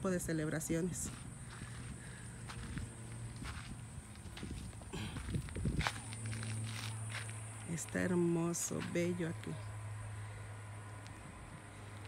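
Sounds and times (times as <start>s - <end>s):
footsteps on ground: 0.7s - 9.6s.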